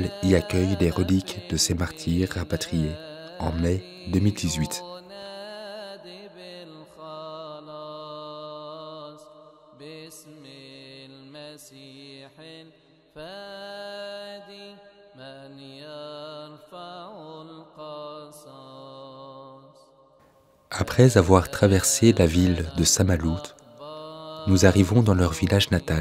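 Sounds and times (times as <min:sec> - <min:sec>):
man chanting slow melody: 0:00.0 - 0:19.6, 0:20.7 - 0:26.0.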